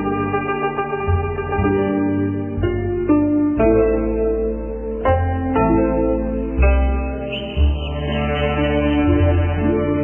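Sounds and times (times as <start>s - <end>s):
guzheng and flute notes: 5.8s - 10.0s.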